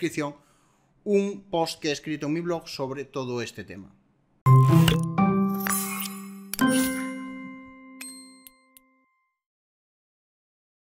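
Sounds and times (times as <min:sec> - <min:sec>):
bright ding: 0:05.6 - 0:09.4.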